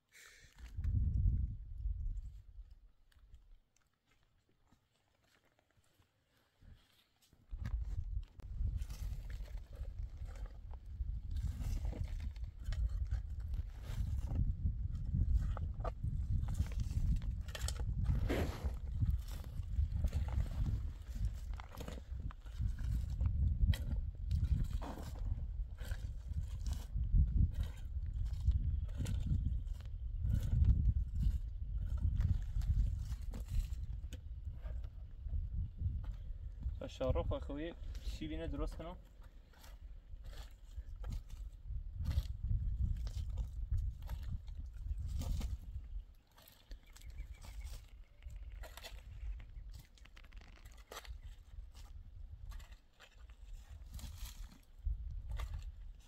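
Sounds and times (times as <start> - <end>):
shovel scraping soil: 16.6 - 19.4, 24.4 - 28.4.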